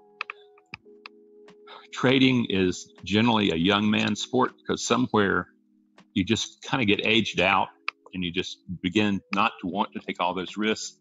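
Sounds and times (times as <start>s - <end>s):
background music of held tones: 0.0s - 11.0s
faint sharp clicks: 0.2s - 1.6s.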